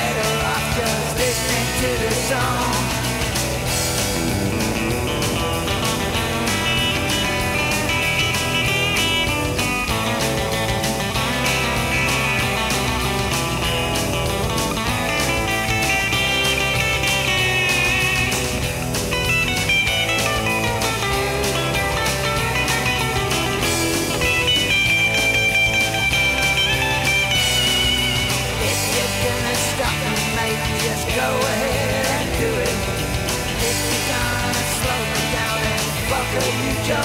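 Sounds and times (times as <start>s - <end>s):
bass: 0.0s - 37.0s
electric guitar lead: 0.0s - 37.0s
steady drum beat: 0.0s - 37.0s.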